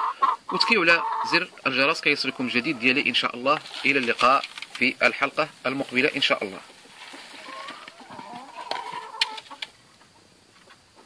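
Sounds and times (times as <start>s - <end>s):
hens clucking: 0.0s - 11.0s.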